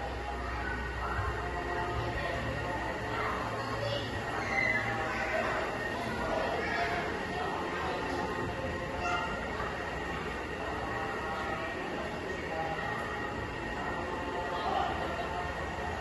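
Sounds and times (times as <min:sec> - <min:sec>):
faint indistinct voices: 0:00.0 - 0:16.0
steady background hum: 0:00.0 - 0:16.0.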